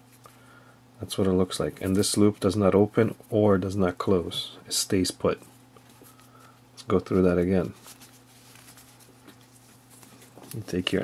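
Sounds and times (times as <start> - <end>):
low electrical hum: 0.0 - 11.0
rope rustling in hands: 5.4 - 11.0.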